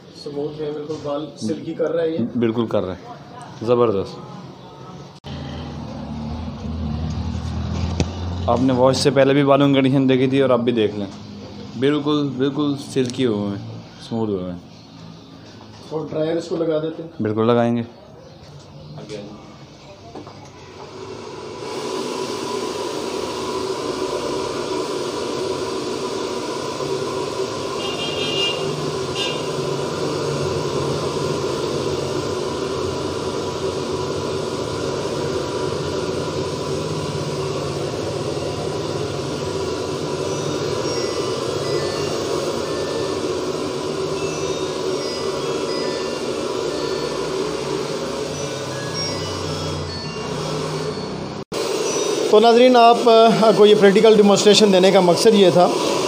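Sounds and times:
hair dryer running: 20.7 - 56.0.

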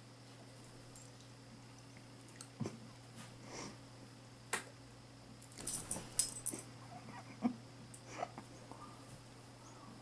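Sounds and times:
metal collar tags jingling: 5.4 - 6.6.

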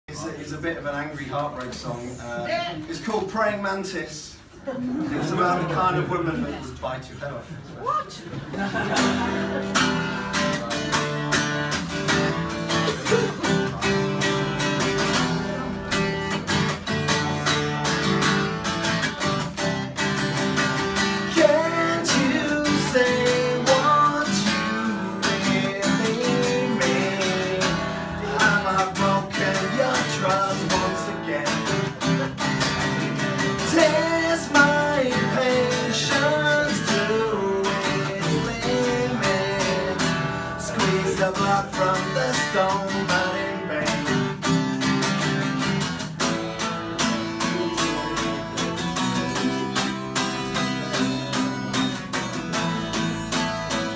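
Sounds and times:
acoustic guitar strumming: 8.7 - 53.9
man singing: 21.0 - 44.6.

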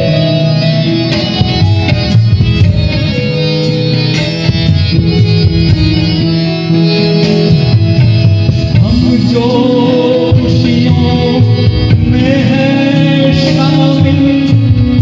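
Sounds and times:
electronic keyboard melody: 0.0 - 15.0
harmonium: 0.0 - 15.0
tabla: 0.0 - 15.0.

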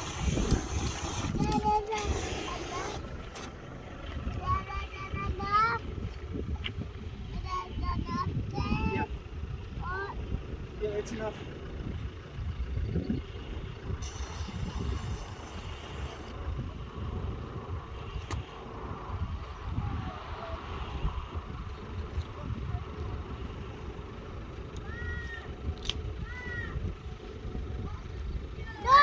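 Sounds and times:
wind buffeting microphone: 0.0 - 3.2, 4.0 - 29.0
child calling out: 24.8 - 25.6, 26.2 - 26.8, 28.6 - 29.0.

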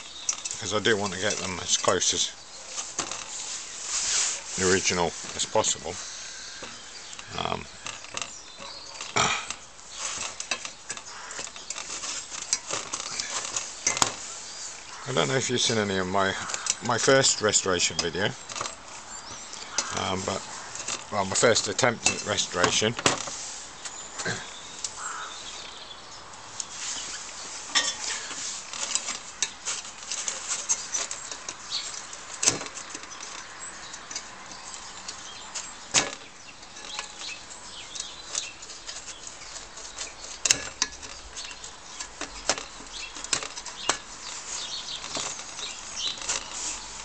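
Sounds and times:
tools clicking and scraping on metal: 0.0 - 25.3, 26.5 - 47.0.

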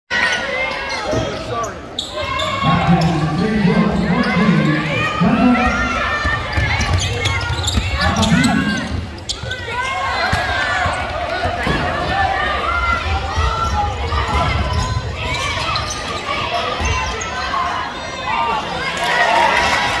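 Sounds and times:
voices in a hall: 0.1 - 20.0
sneakers squeaking: 0.2 - 12.1, 12.9 - 18.1.

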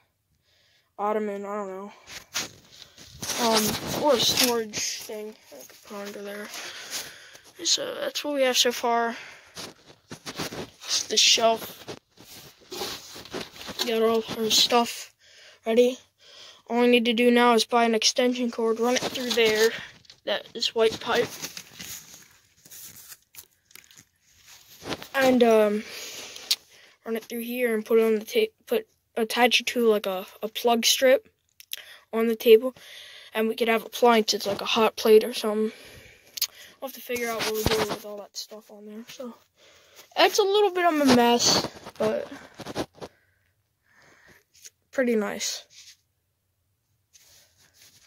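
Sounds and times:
faint crunches and clicks of handling: 2.1 - 7.6, 9.4 - 14.7, 18.8 - 25.4.

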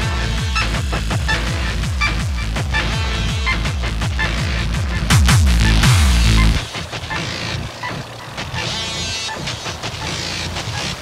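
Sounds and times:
machine-like electronic textures: 4.2 - 11.0
percussive hits: 5.0 - 6.7.

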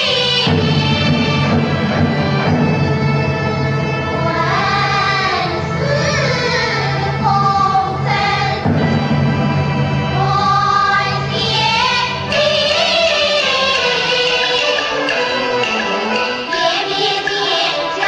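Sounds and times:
traditional instrumental accompaniment: 0.0 - 18.0.

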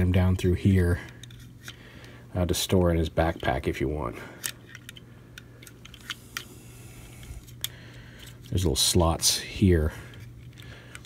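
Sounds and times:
faint low hum: 0.0 - 11.0.

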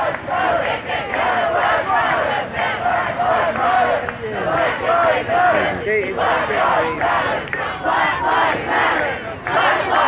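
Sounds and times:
crowd shouting a chant: 0.0 - 10.0.

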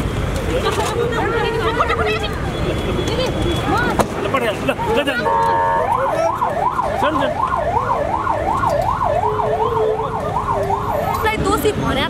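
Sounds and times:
crowd noise: 0.0 - 12.0
street noise: 0.0 - 12.0
emergency vehicle siren wailing: 4.6 - 12.0.

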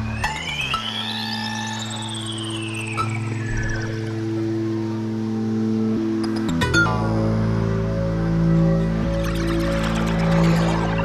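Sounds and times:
sweeping high synth tones: 0.0 - 5.7, 8.5 - 11.0
low synthesizer drone: 0.0 - 11.0.

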